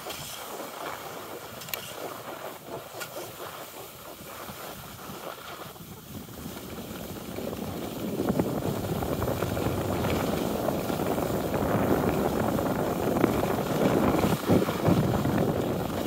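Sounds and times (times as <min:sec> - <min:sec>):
skis hissing on snow: 0:00.0 - 0:16.0
wind rushing over microphone: 0:00.0 - 0:16.0.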